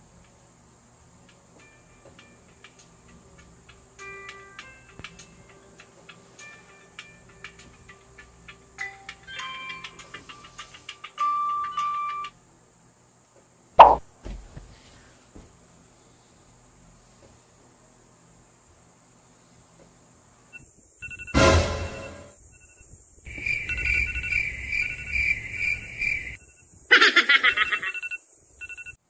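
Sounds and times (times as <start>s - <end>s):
loud thump: 13.8s - 14.4s
smartphone chime tone: 21.2s - 22.3s.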